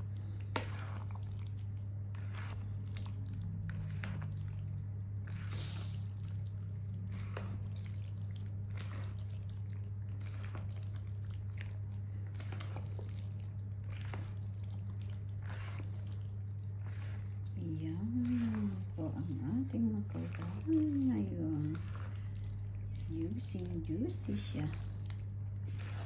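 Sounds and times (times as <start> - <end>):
steady low hum: 0.0 - 26.0
wet squishing stirring: 0.0 - 26.0.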